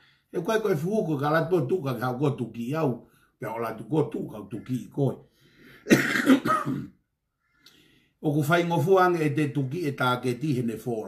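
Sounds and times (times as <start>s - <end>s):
man speaking: 0.3s - 5.2s, 8.2s - 11.0s
man clearing his throat: 5.9s - 7.0s.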